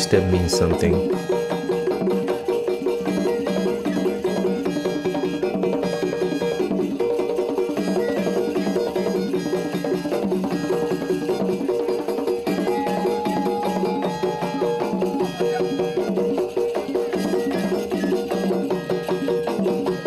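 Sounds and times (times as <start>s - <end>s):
drums and percussion rhythm: 0.0s - 20.0s.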